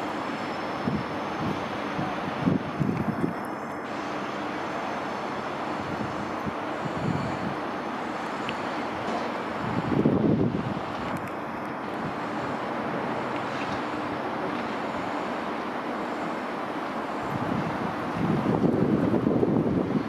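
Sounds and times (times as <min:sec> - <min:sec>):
train wheels rumbling on rails: 0:00.0 - 0:20.0
wind on microphone: 0:00.7 - 0:04.0, 0:05.7 - 0:07.8, 0:08.5 - 0:12.3, 0:17.2 - 0:20.0.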